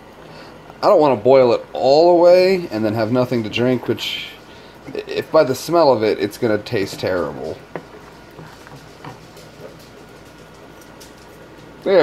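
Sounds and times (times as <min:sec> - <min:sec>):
wooden spoon stirring: 0:03.0 - 0:12.0.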